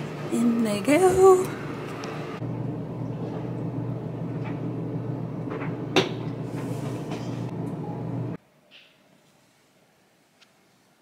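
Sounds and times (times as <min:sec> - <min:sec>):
washing machine humming: 0:00.0 - 0:08.4.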